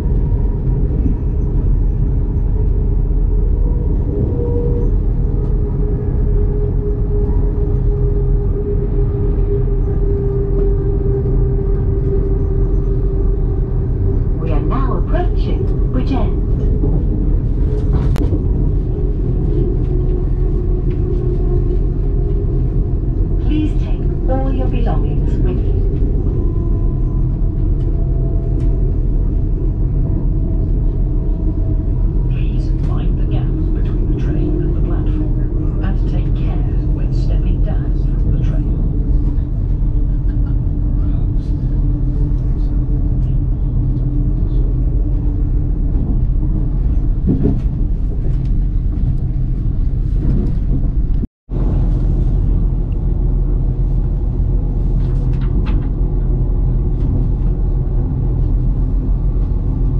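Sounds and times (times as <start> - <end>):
train rumbling inside carriage: 0.0 - 59.9.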